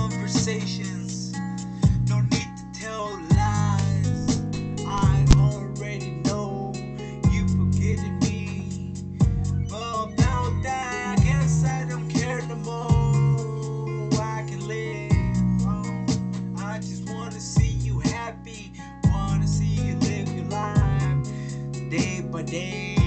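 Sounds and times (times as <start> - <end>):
guitar: 0.0 - 23.0
deep bass notes: 1.9 - 2.3, 3.3 - 6.0, 7.3 - 12.0, 12.9 - 13.7, 15.1 - 16.5, 17.6 - 18.1, 19.0 - 21.4
drum hits: 3.3 - 5.5, 12.9 - 13.1, 15.1 - 15.4.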